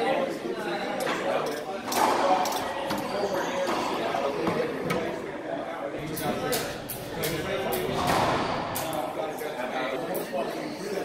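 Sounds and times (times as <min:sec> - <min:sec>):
background chatter: 0:00.0 - 0:11.0
racquetball hits: 0:07.3 - 0:08.9.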